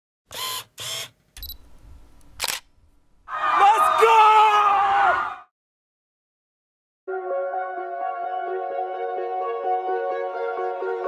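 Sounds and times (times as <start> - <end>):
camera shutter bursts: 0.3 - 1.6, 2.4 - 2.7.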